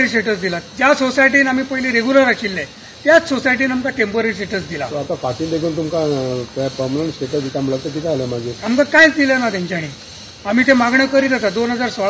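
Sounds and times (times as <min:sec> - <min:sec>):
man speaking: 0:00.0 - 0:12.0
steady background hiss: 0:00.0 - 0:12.0.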